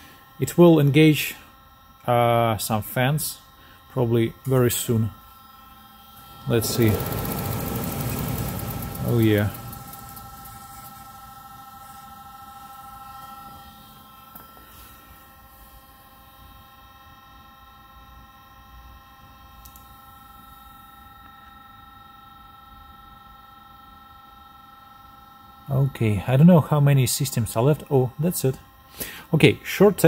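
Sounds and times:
electric cooling fans humming: 0:00.0 - 0:18.4, 0:19.0 - 0:30.0
steady high tones: 0:06.0 - 0:13.8.

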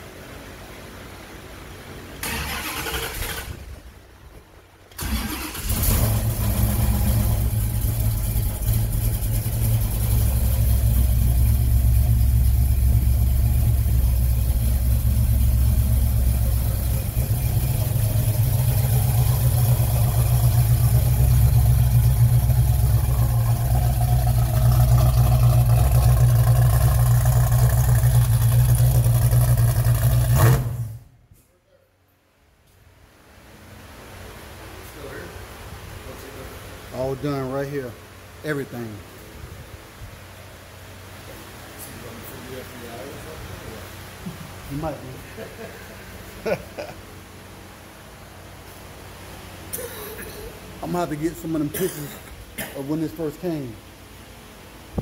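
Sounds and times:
car engine cranking: 0:02.2 - 0:03.8, 0:04.9 - 0:31.0
car engine idling: 0:04.9 - 0:31.1.

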